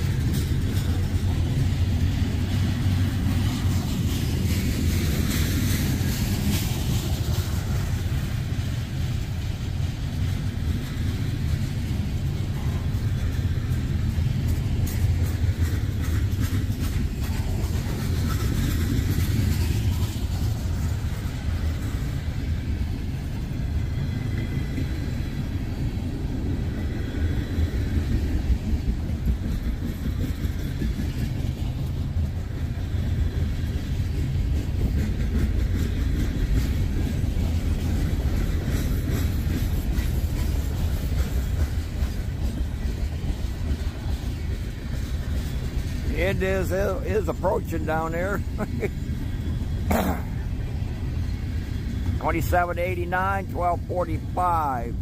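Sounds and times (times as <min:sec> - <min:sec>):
freight train wheels rumbling: 0:00.0 - 0:55.0.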